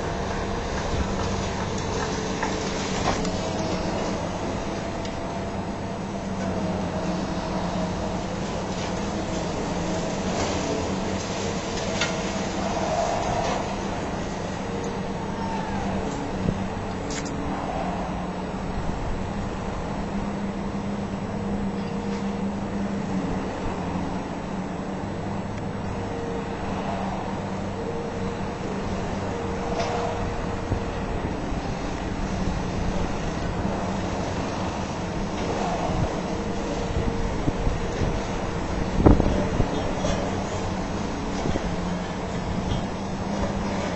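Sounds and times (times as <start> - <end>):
heavy demolition machinery drone: 0.0 - 43.9
road traffic: 0.0 - 43.9.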